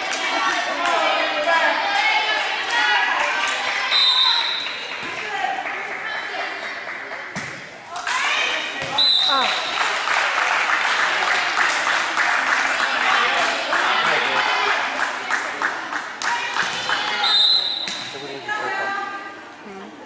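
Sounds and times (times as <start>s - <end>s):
referee's whistle: 3.9s - 4.8s, 8.9s - 9.8s, 17.2s - 18.1s.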